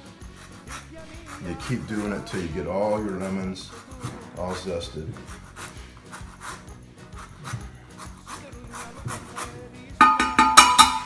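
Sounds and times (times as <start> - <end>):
zester scraping lemon: 0.0 - 10.0.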